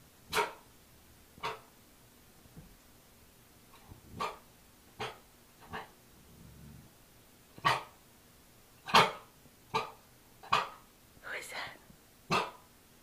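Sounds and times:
puppy barking: 0.3 - 0.6, 4.2 - 4.4, 5.0 - 5.9, 7.6 - 7.9, 8.9 - 10.8, 12.3 - 12.6.

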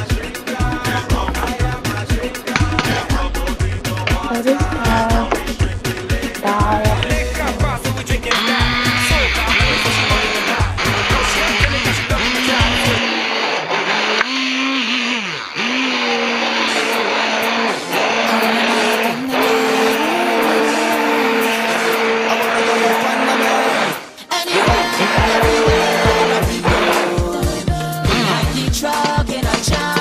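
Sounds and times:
background music: 0.0 - 13.0, 17.5 - 30.0
bass beat: 0.0 - 13.0, 24.5 - 30.0
immersion blender motor: 4.0 - 30.0.

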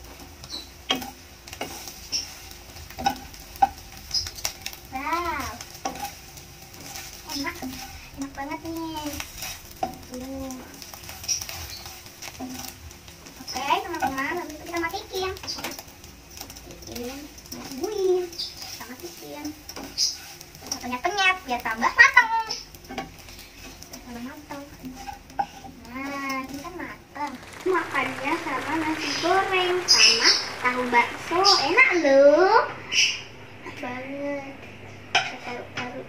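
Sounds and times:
spatula scraping frying pan: 0.4 - 14.8, 15.4 - 21.7, 22.8 - 26.8
child speaking: 4.9 - 5.7, 7.3 - 9.2, 10.1 - 10.7, 16.8 - 19.6, 25.8 - 32.8, 33.6 - 34.6, 35.3 - 36.0.

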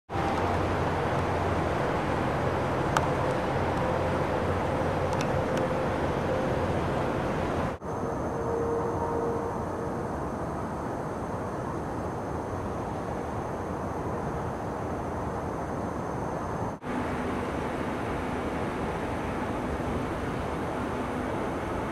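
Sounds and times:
low rumble of gas flaring: 0.1 - 8.1, 9.0 - 21.9.

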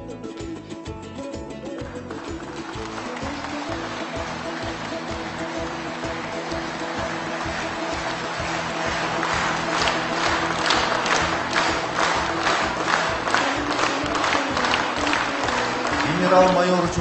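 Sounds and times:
audience clapping: 1.4 - 17.0
ceremonial music with held notes: 2.0 - 17.0.

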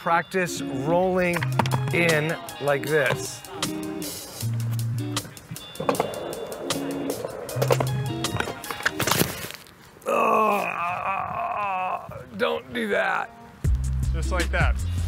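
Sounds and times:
background music: 0.0 - 9.3, 13.2 - 15.0
skateboard rolling on concrete: 0.6 - 9.8
skateboard crashing on concrete: 5.6 - 9.7.

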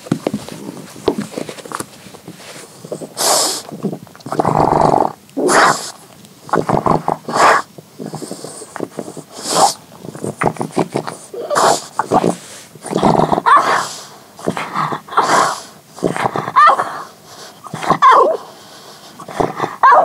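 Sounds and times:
dog sniffing: 0.3 - 20.0.

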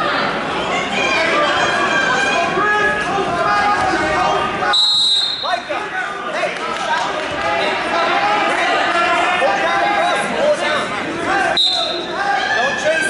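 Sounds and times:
spectators shouting: 0.0 - 13.0
referee whistle blast: 4.7 - 5.6, 11.6 - 12.1.

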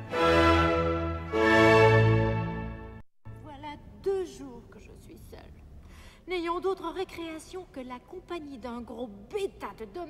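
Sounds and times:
woman speaking: 3.4 - 5.6, 6.3 - 10.0.

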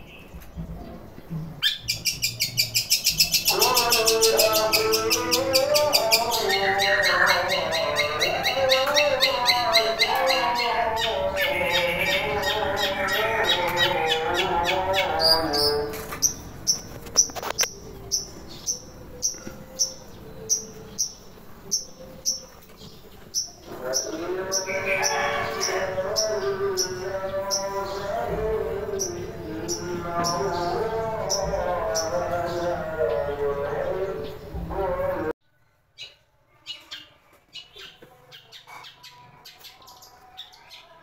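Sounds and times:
shrike chattering and warbling: 1.8 - 22.5.

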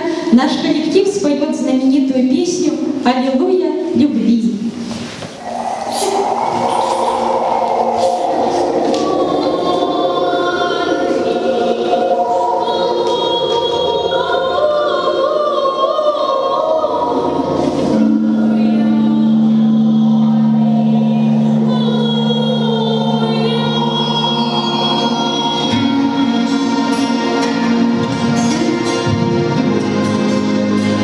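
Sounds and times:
deep held note: 5.4 - 12.6, 17.9 - 27.4
choir singing long notes: 5.4 - 31.0.

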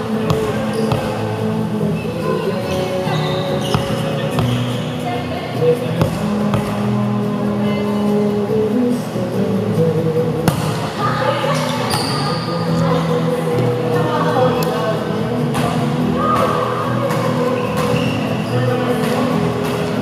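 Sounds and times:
music in a gym hall: 0.0 - 20.0
volleyball being hit: 0.2 - 1.2, 10.5 - 10.9.

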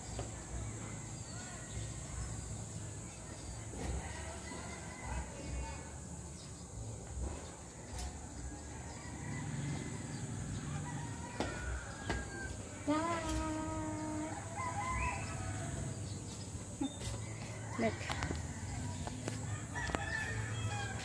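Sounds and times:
rooster crowing: 8.9 - 16.0, 17.7 - 21.0.

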